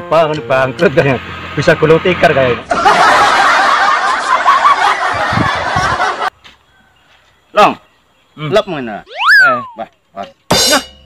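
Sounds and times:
canned audience laughter: 2.7s - 6.3s.

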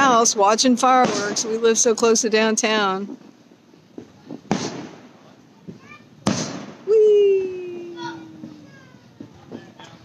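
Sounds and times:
fireworks booming: 0.0s - 9.9s
faint fireworks pops: 0.8s - 1.9s, 2.9s - 10.0s.

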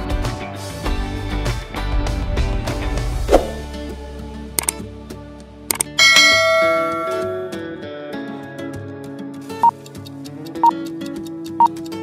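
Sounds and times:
background music: 0.0s - 12.0s
bright bell chime: 6.0s - 7.7s.

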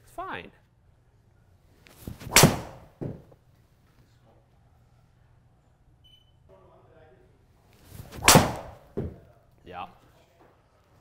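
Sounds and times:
golf club swing whoosh: 2.0s - 3.0s, 7.9s - 8.8s
ball hitting screen: 2.1s - 3.3s, 8.0s - 9.2s
club striking golf ball: 2.2s - 3.2s, 8.1s - 9.1s.

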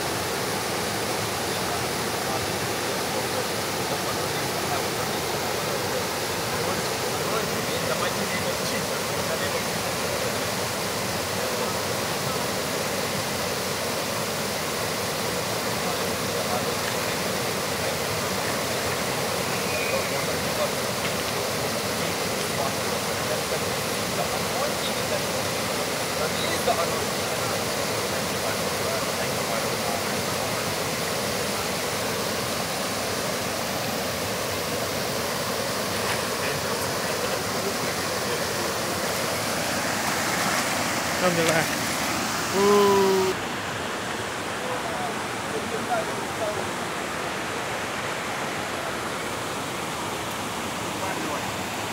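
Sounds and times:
faint voices: 0.0s - 51.9s
waterfall rushing over rocks: 0.0s - 51.9s.

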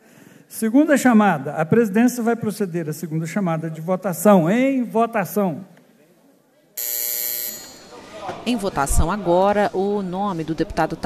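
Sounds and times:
electronic buzzer: 6.8s - 8.0s.

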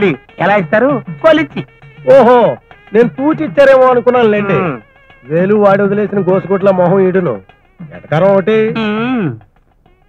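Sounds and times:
man speaking: 0.0s - 9.5s.

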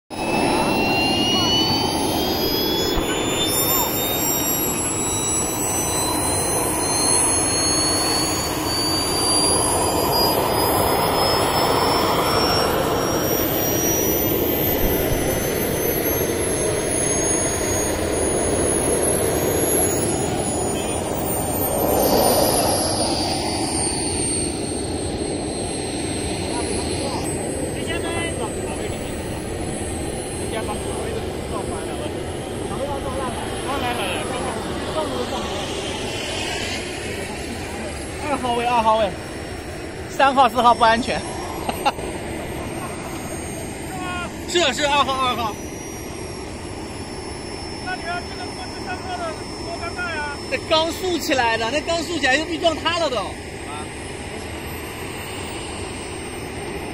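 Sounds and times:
high wavering whistle: 0.1s - 56.9s
jet turbine running: 0.1s - 56.9s.

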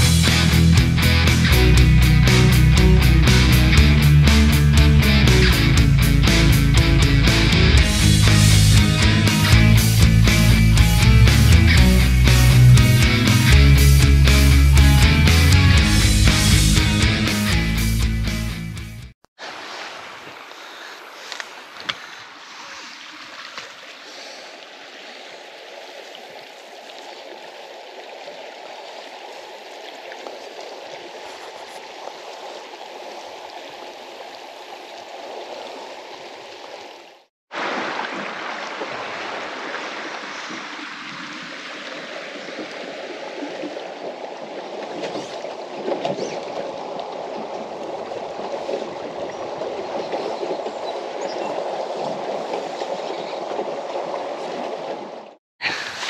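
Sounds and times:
fast-flowing river water: 19.4s - 56.0s.

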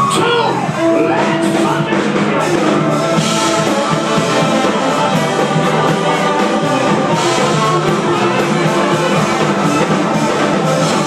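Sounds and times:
drum kit: 0.0s - 11.0s
electric guitar: 0.0s - 11.0s
trombone and saxophone: 0.7s - 11.0s.

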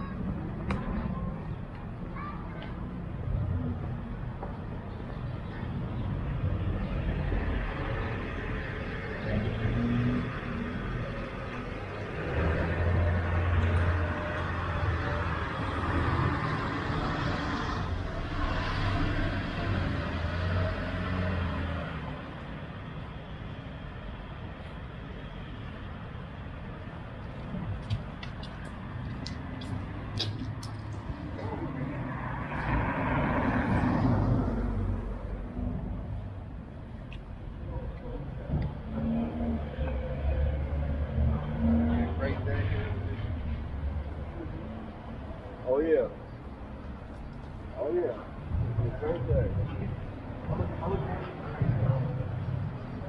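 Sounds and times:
street noise: 0.0s - 53.0s.

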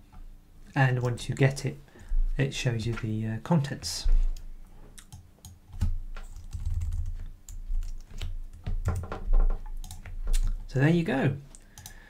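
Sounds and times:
keyboard and mouse clicking: 4.4s - 10.6s, 11.5s - 12.0s.

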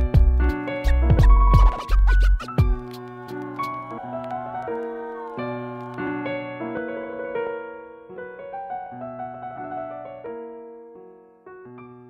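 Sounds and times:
deep bass: 0.0s - 2.8s
turntable scratching: 0.2s - 6.1s
drum hits: 2.6s - 2.9s.

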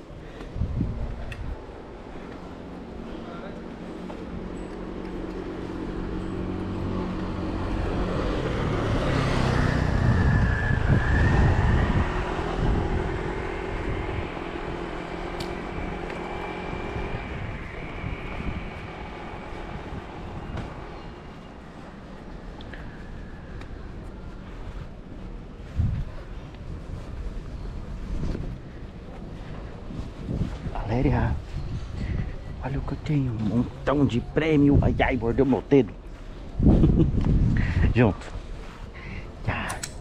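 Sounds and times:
vehicle engine passing: 2.6s - 23.3s.

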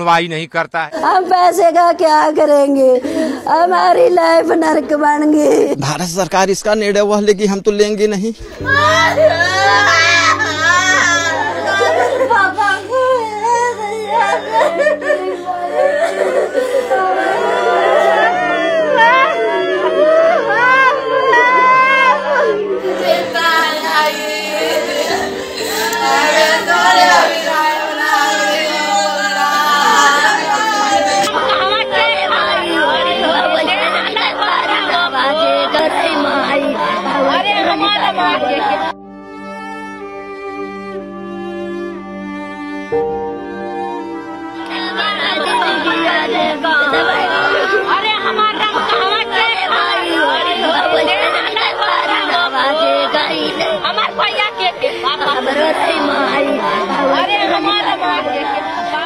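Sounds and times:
slow cello music: 8.4s - 59.0s
women wailing and sobbing: 8.6s - 39.0s, 43.9s - 59.0s.

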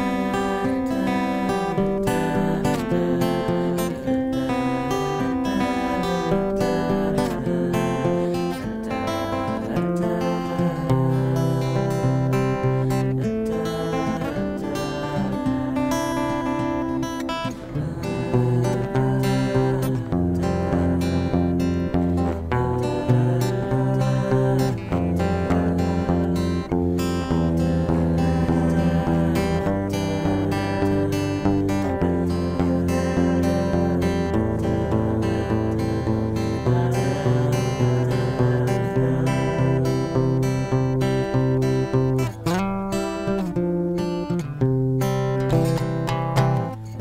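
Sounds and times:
acoustic guitar strumming and picking: 0.0s - 47.0s.

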